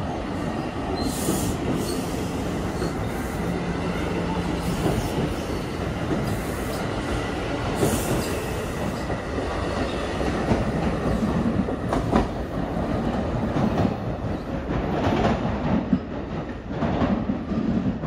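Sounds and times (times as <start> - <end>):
train wheels rumbling on rails: 0.0 - 18.0.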